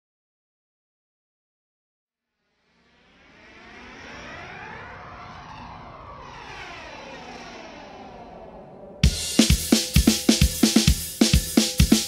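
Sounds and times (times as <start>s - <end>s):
sweeping whoosh: 2.5s - 9.4s
aircraft fly-over engine rush: 2.8s - 9.1s.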